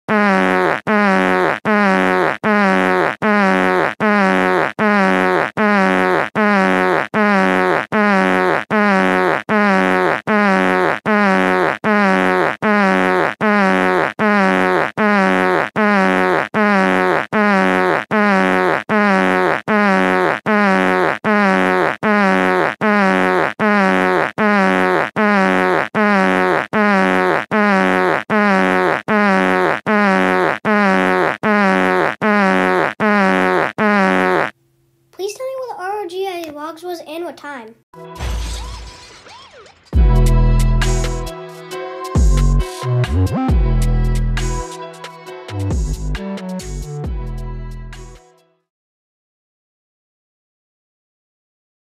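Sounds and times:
looped pitched sound clip: 0:00.2 - 0:34.6.

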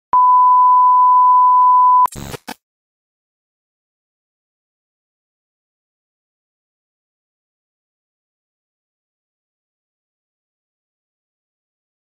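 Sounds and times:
steady electronic beep: 0:00.1 - 0:02.1.

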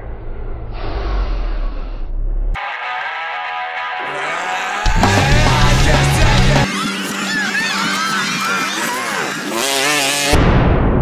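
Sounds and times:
loud rush of noise: 0:04.8 - 0:11.0
vehicle engine revving: 0:04.9 - 0:07.0, 0:08.4 - 0:10.4.

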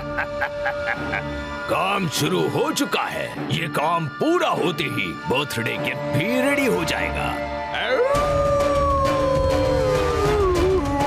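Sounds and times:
background music: 0:00.0 - 0:11.0
cartoon wolf howl: 0:07.8 - 0:11.0.

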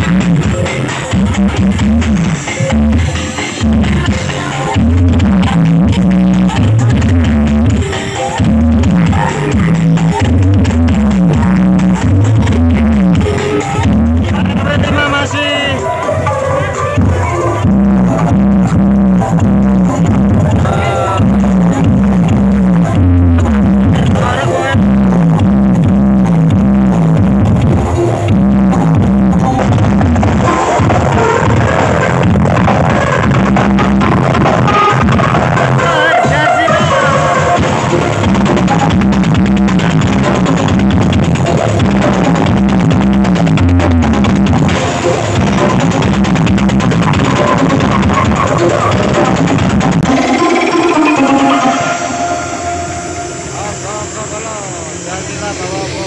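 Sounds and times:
loud electronic dance music: 0:00.0 - 0:54.7
sound-effect jingle over loudspeakers: 0:50.0 - 0:54.4.

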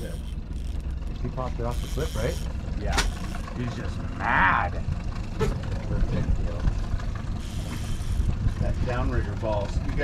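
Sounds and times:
outboard motor low rumble: 0:00.0 - 0:10.0.

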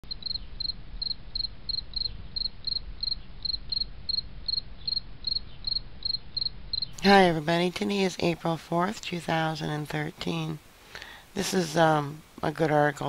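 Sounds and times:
cricket chirping: 0:00.0 - 0:07.0.

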